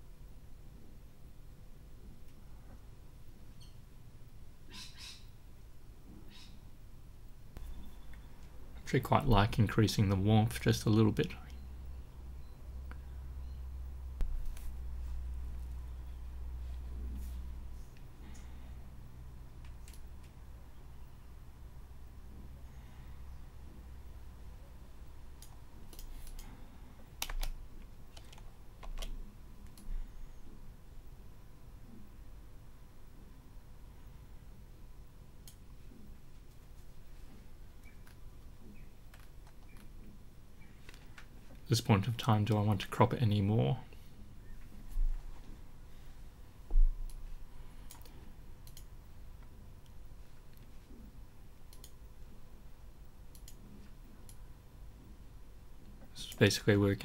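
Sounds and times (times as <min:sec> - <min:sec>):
low steady hum: 0:00.0 - 0:57.0
computer keys clicking: 0:25.4 - 0:26.5, 0:27.2 - 0:29.9, 0:47.8 - 0:48.9, 0:51.7 - 0:52.0, 0:53.3 - 0:53.6.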